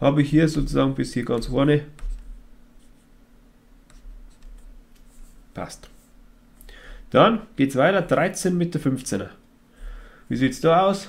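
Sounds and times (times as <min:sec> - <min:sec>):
steady low hum: 0:00.0 - 0:11.0
stylus tapping and scratching: 0:00.6 - 0:03.1, 0:03.8 - 0:06.1.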